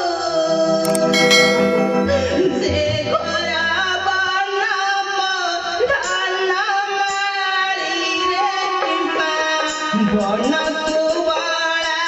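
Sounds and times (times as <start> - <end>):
musical accompaniment low notes: 0.4 - 4.8
bright metallic clash: 0.9 - 3.7.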